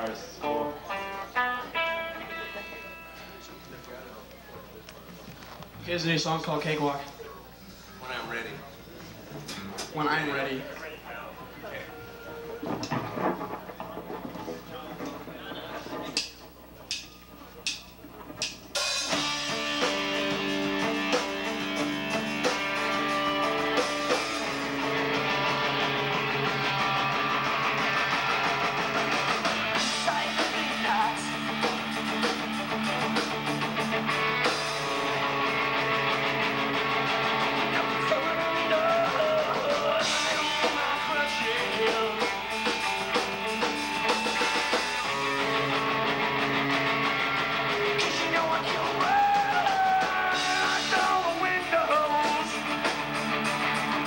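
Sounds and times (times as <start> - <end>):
punk rock band playing: 0.0 - 3.4, 18.0 - 54.0.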